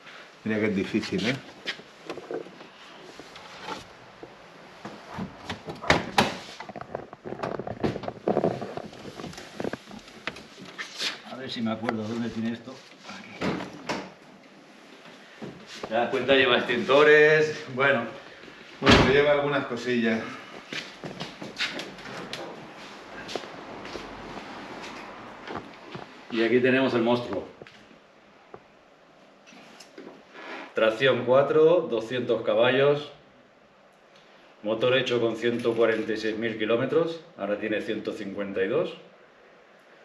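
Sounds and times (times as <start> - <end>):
scraping and rustling: 0.9 - 13.8.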